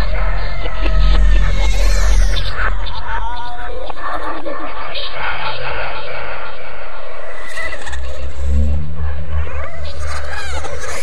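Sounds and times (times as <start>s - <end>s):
deep horror rumble: 0.0s - 11.0s.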